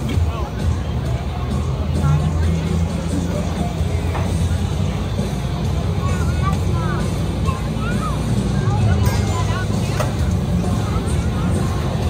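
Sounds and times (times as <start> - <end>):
crowd voices: 0.0 - 12.0
fire engine diesel rumble: 0.0 - 12.0.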